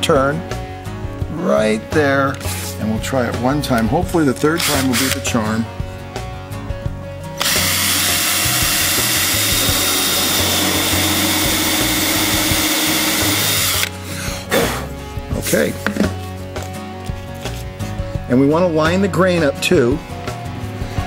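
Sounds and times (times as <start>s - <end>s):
hand drill boring into wood: 4.6s - 5.2s, 7.4s - 14.0s.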